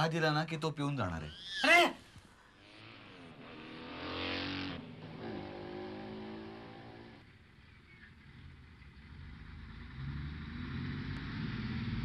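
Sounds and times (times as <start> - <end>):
vehicle engine speeding up: 2.6 - 7.4, 8.9 - 12.0.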